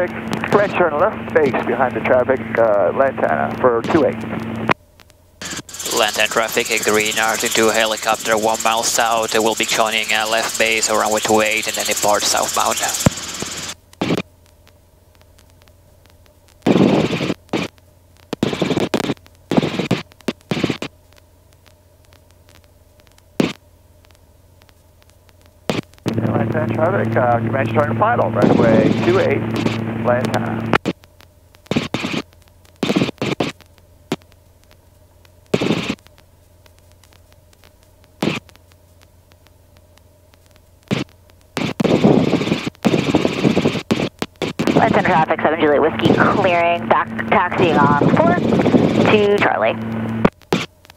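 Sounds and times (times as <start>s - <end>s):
static-filled radio transmission: 0.0s - 4.8s, 5.4s - 14.2s, 16.6s - 20.9s, 21.6s - 23.6s, 24.7s - 50.9s
radio clicks: 3.8s - 26.2s, 28.2s - 50.9s
bursts of crackling hiss: 5.0s - 26.6s, 28.3s - 50.9s
helicopter drone through intercom: 5.4s - 13.7s, 26.1s - 30.7s, 44.7s - 49.9s
radio squelch burst: 5.4s - 14.2s, 25.7s - 30.9s, 35.6s - 36.0s, 40.9s - 50.7s.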